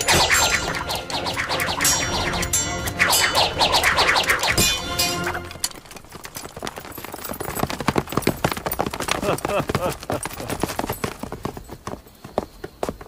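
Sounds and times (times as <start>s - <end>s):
rapid footfalls on hard ground: 10.6s - 13.0s.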